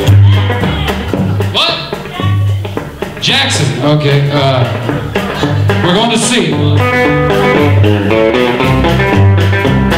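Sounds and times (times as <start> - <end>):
drums: 0.0 - 9.9
electric guitar: 0.0 - 9.9
upright bass notes: 0.0 - 9.9.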